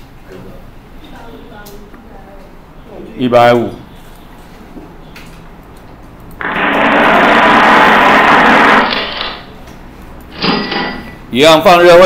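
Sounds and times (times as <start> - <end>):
loud steady whirring: 6.4 - 9.6.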